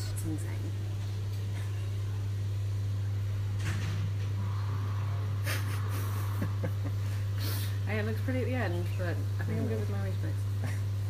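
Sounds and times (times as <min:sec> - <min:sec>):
steady low hum: 0:00.0 - 0:11.0
breathy hisses: 0:04.4 - 0:07.9.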